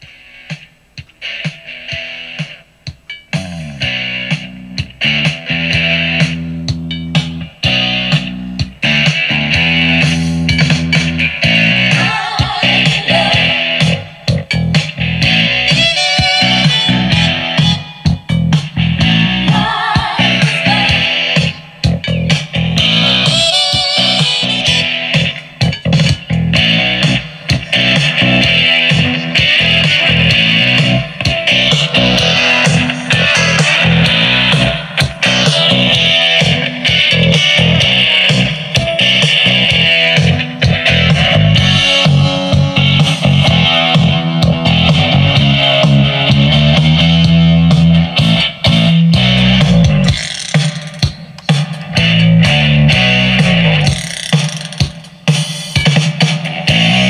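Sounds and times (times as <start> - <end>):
guitar and bass music on speaker: 0.0 - 57.0.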